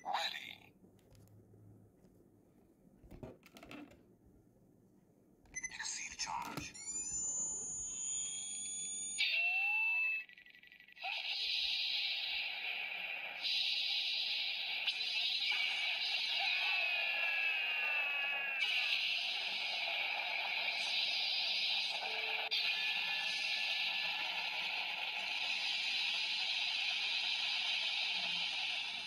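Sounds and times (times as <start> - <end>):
toy electronic sound effects: 5.6 - 29.0
electronic noise with sweeping tones: 6.6 - 29.0.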